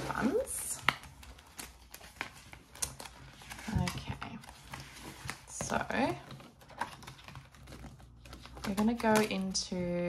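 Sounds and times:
pages flipping: 0:00.0 - 0:09.8
plastic binder clicks and taps: 0:05.6 - 0:09.6.

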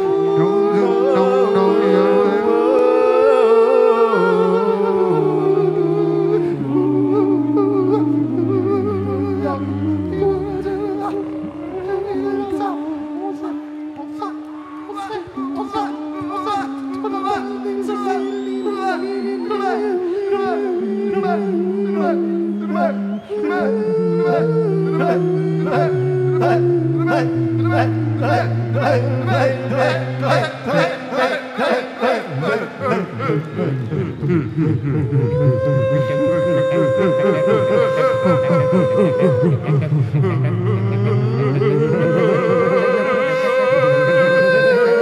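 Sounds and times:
men singing a cappella: 0:00.0 - 0:45.0.

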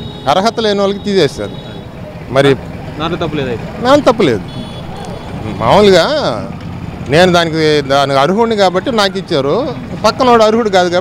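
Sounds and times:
street traffic noise: 0:00.0 - 0:11.0
man speaking: 0:00.2 - 0:04.6.

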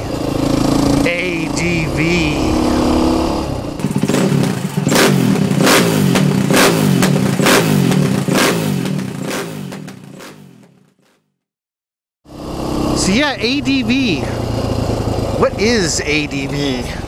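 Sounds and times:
engine revving: 0:00.0 - 0:11.2, 0:12.3 - 0:17.0
sharp hits: 0:00.0 - 0:11.2.

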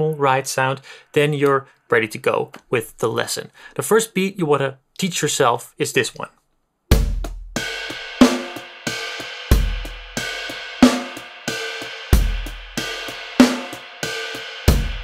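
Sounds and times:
kick drum: 0:06.9 - 0:07.6.

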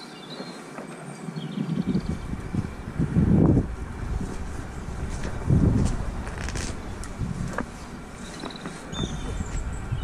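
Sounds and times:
wind buffeting microphone: 0:00.3 - 0:10.0.

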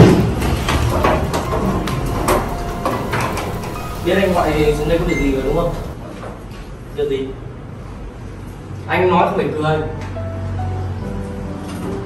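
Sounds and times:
chairs scraping on tiled floor: 0:00.0 - 0:06.0.

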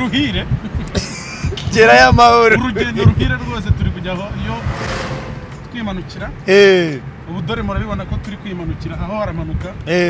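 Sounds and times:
voices inside car: 0:00.0 - 0:04.4, 0:05.9 - 0:10.0
car engine hum: 0:00.0 - 0:10.0
road noise: 0:00.0 - 0:10.0.

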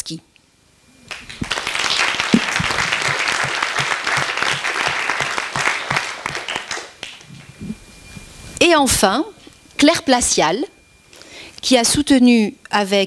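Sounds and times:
audience applauding: 0:01.1 - 0:07.3.

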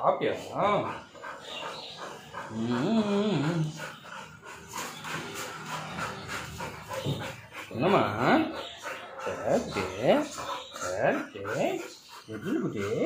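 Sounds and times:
puppy panting and snuffling: 0:00.0 - 0:13.0
puppy whining: 0:00.5 - 0:13.0.

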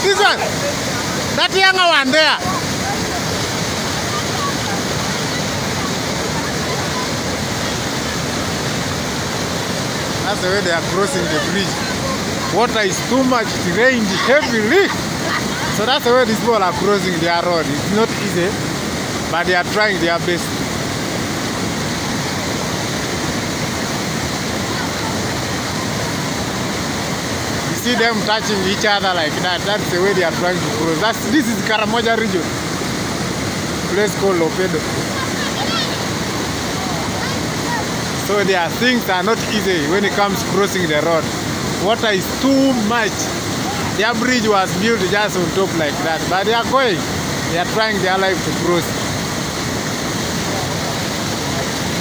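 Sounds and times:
faint voices: 0:00.0 - 0:08.3, 0:10.2 - 0:18.4, 0:50.2 - 0:52.0
floodwater rushing: 0:00.0 - 0:52.0.

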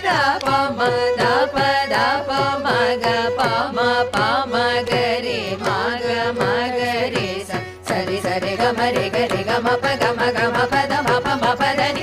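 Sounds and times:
mridangam strokes: 0:00.0 - 0:12.0
women singing vocal exercise: 0:00.0 - 0:12.0.

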